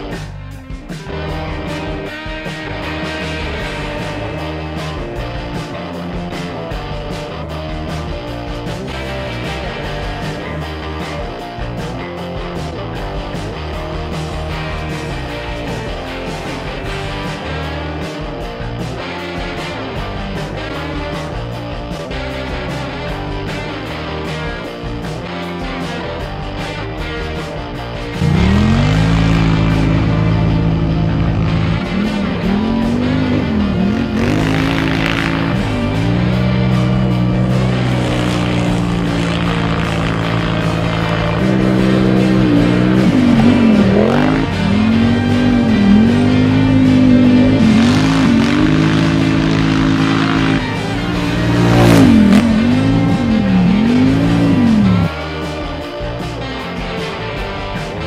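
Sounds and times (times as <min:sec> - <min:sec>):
quad bike engine revving: 0:00.0 - 0:21.7, 0:26.0 - 0:55.7
background music: 0:00.0 - 0:58.0.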